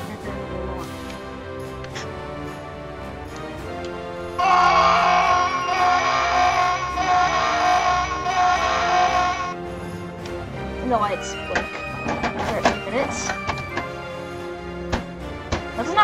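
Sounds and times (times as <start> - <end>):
pulsing electronic alarm tone: 4.4 - 9.5.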